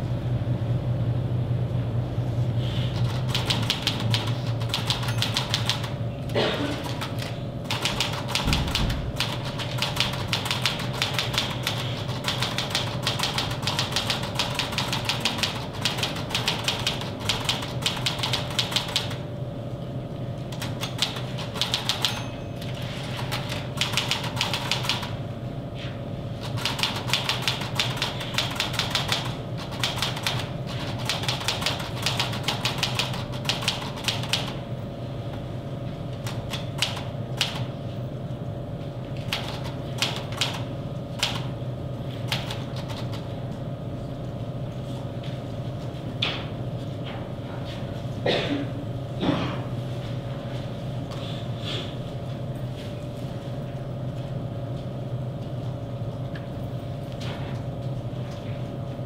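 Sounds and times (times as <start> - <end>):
steady low hum: 0.0 - 59.0
fast typing on a keyboard: 3.0 - 6.0, 6.7 - 19.2, 20.5 - 22.2, 23.1 - 25.2, 26.4 - 34.6, 36.2 - 37.7, 39.2 - 41.5, 42.2 - 43.3.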